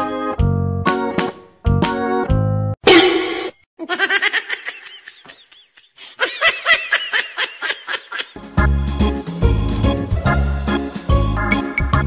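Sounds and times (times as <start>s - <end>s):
music: 0.0s - 2.8s, 8.4s - 12.0s
person laughing: 3.8s - 8.4s.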